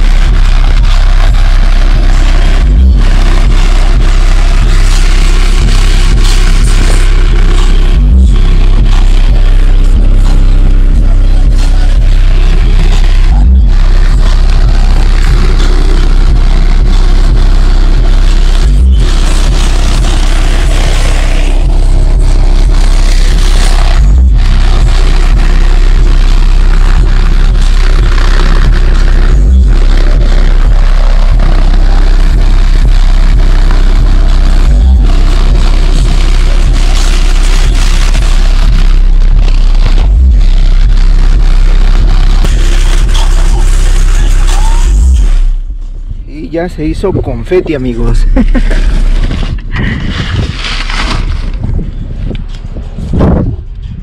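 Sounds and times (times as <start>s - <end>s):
bass-heavy music from subwoofer: 0.0s - 54.0s
paper tearing: 48.7s - 51.7s.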